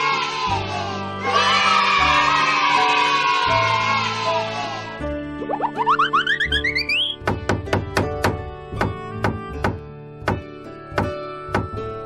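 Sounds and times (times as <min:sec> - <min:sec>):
background music: 0:00.0 - 0:12.0
rising cartoon notes: 0:05.4 - 0:07.2.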